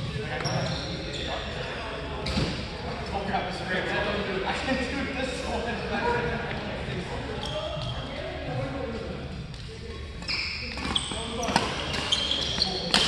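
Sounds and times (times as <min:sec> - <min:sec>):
sneakers squeaking on court: 0:00.0 - 0:01.6, 0:07.4 - 0:08.1, 0:09.9 - 0:13.0.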